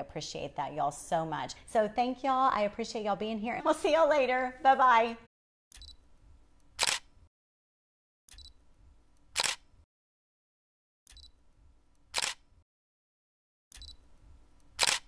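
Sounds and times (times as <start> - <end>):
camera shutter snap: 6.8 - 7.1, 9.4 - 9.7, 12.1 - 12.4, 14.8 - 15.0
faint camera click: 6.8 - 7.1, 9.4 - 9.6, 12.1 - 12.4, 14.7 - 15.0.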